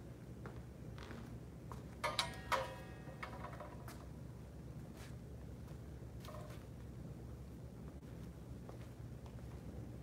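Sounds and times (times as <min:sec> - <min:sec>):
saber clattering with ringing: 0:02.0 - 0:04.1.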